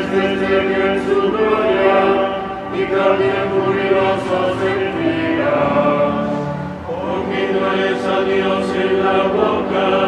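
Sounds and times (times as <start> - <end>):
choir singing sustained notes: 0.0 - 10.0.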